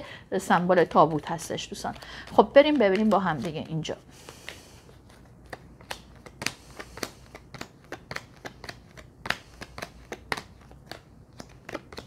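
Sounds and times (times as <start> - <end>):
cards being shuffled: 0.8 - 12.0.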